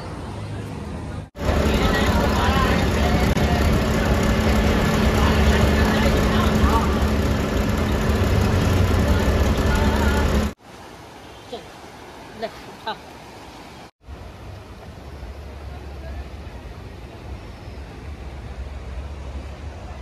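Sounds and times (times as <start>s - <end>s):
vehicle rumble: 0.0s - 10.6s
indistinct voices: 1.4s - 10.6s.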